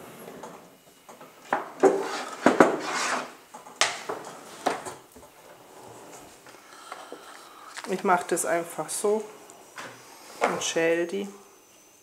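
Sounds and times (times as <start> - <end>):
knife scraping: 1.9 - 3.4.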